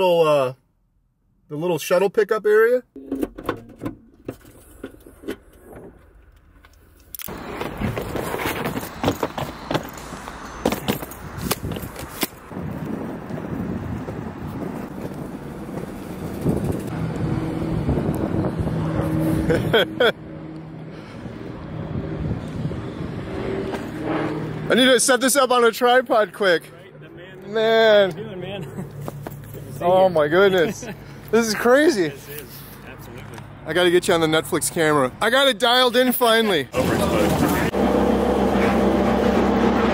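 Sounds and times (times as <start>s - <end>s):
traffic: 0.0s - 39.9s
vehicle engine humming: 3.0s - 35.5s, 36.5s - 39.9s
wind noise: 7.3s - 19.8s, 21.3s - 24.5s
person laughing: 19.3s - 20.3s, 28.5s - 29.1s, 30.6s - 31.0s
footsteps on pavement: 28.9s - 29.8s.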